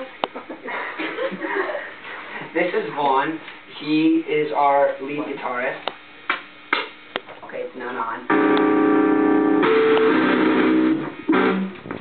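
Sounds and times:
loud electric guitar chords: 8.3 - 12.0.

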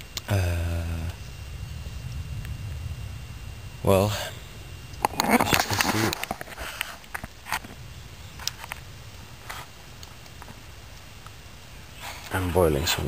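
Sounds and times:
campfire crackling and popping: 0.0 - 13.0
faint low rumble: 0.0 - 13.0.

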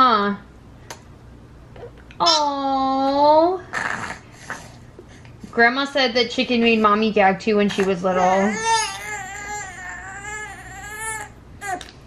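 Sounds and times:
baby crying: 8.1 - 11.9.

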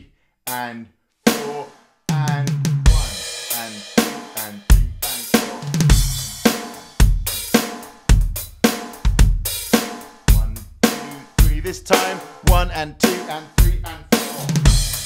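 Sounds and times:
electronic drum kit: 1.3 - 15.0.

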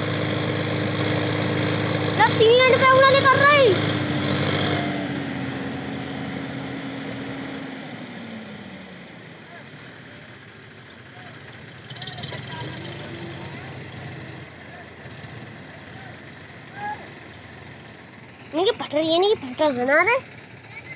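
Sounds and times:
tractor diesel engine: 0.0 - 20.9
loud shout: 16.7 - 17.1.

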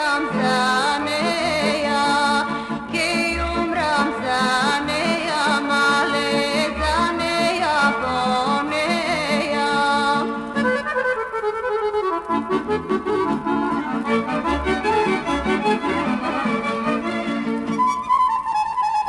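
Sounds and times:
folk instrumental music: 0.0 - 19.0.

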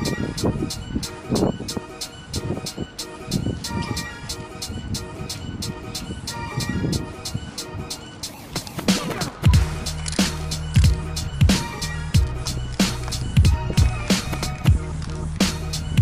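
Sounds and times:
snare and hi-hat hits: 8.2 - 14.8
bass line: 9.4 - 16.0.

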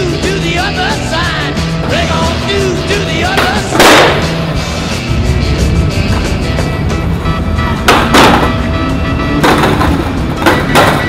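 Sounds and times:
background music: 0.0 - 11.0
skateboard clacking on ledge: 3.3 - 4.6, 7.8 - 11.0
skateboard scraping on ledge: 3.4 - 11.0.

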